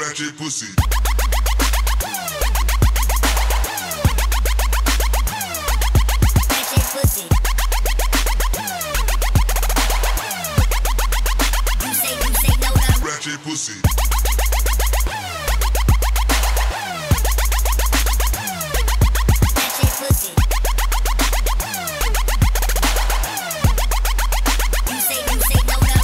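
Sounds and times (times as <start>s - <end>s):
fast dense electronic beat: 0.8s - 13.1s, 13.8s - 26.0s
heavy sub-bass: 0.8s - 13.1s, 13.9s - 19.8s, 20.4s - 26.0s.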